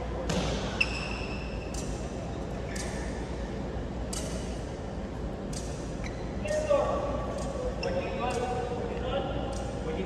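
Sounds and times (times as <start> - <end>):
rackets striking shuttlecock: 0.3 - 2.1.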